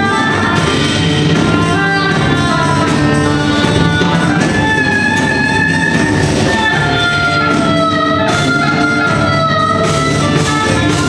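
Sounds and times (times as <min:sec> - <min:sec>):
improvised jazz band: 0:00.0 - 0:11.0.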